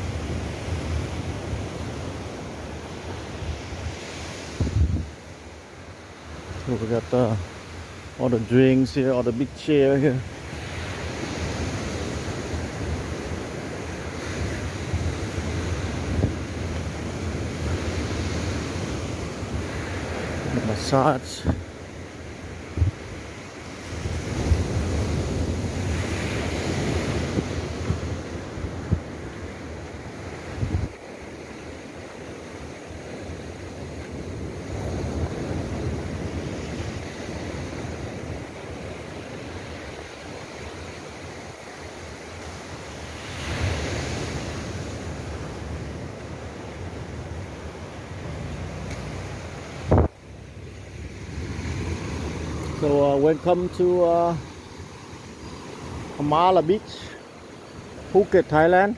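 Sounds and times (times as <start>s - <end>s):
wind rumbling on microphone: 0.0s - 9.1s, 9.8s - 20.8s, 21.4s - 58.7s
surf breaking on a beach: 0.0s - 58.9s.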